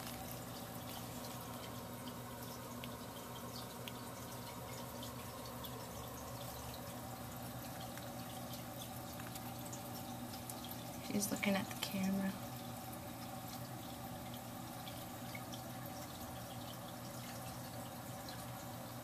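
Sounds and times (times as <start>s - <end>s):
steady background hum: 0.0s - 19.0s.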